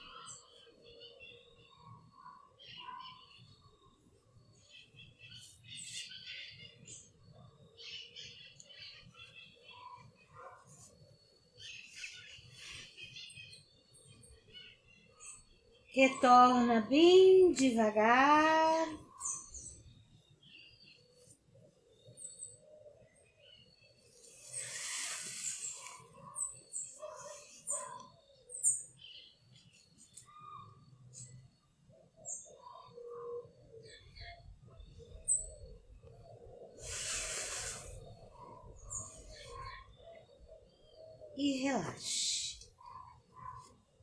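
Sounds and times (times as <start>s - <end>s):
birds chirping: 0.0s - 44.0s
soft rushes of hiss: 24.2s - 26.2s, 36.8s - 38.3s.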